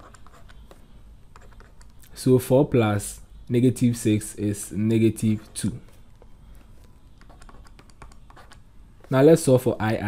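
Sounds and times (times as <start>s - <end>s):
stylus tapping on tablet: 6.2s - 8.6s.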